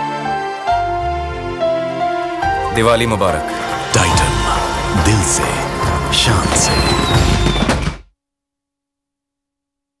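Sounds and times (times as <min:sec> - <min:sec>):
commercial music: 0:00.0 - 0:08.0.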